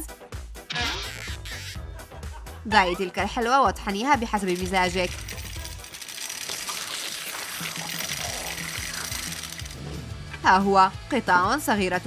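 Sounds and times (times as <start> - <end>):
background music: 0.0 - 12.0
grinder crushing candy: 4.4 - 9.8.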